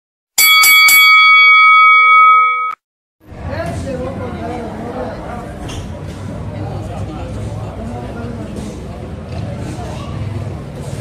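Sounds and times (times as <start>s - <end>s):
boxing ring bell: 0.4s - 2.8s
murmur of voices: 3.3s - 11.0s.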